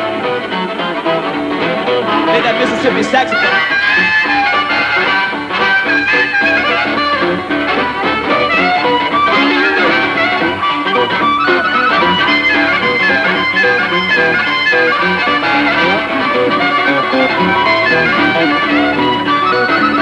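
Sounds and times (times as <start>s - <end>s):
blues harmonica wailing: 0.0s - 20.0s
guitar accompaniment: 0.0s - 20.0s.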